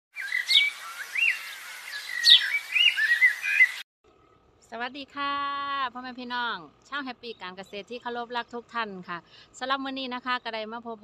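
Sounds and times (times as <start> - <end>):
birdsong chirps and calls: 0.1 - 4.6, 7.0 - 8.6.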